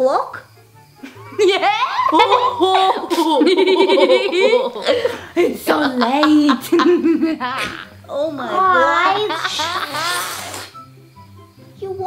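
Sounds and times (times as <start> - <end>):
girl giggling: 1.1 - 10.4.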